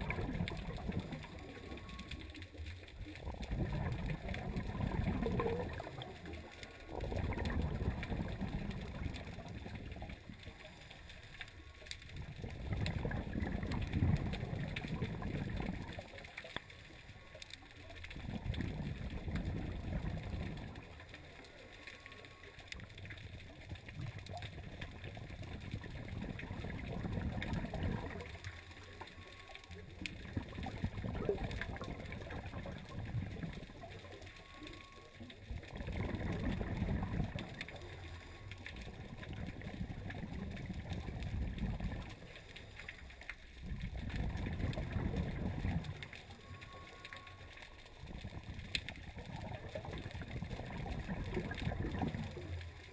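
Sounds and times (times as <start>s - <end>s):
exhaled bubbles rumbling underwater: 0.0s - 52.9s.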